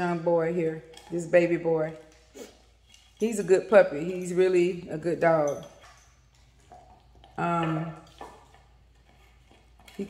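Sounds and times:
dog gnawing a bone: 0:05.8 - 0:07.4, 0:08.0 - 0:10.0.

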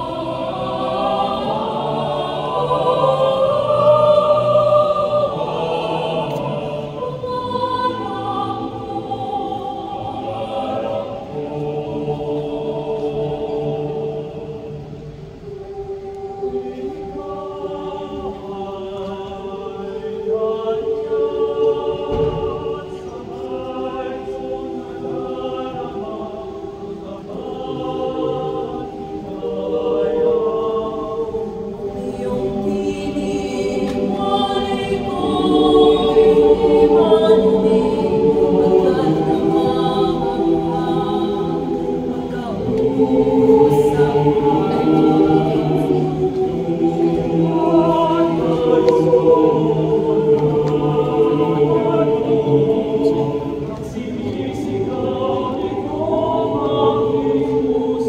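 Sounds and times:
mixed choir singing in harmony: 0:00.0 - 0:58.0.

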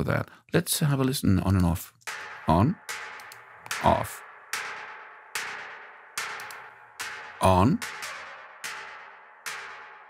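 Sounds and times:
electronic snare drum hits: 0:02.1 - 0:10.0.

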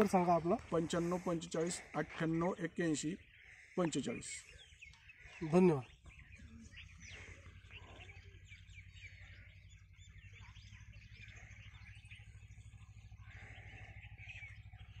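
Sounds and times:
low steady hum: 0:00.0 - 0:15.0
small birds chirping: 0:00.0 - 0:15.0.

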